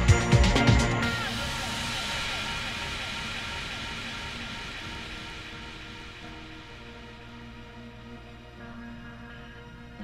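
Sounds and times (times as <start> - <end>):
hiss-like noise wash: 0.9 - 9.8.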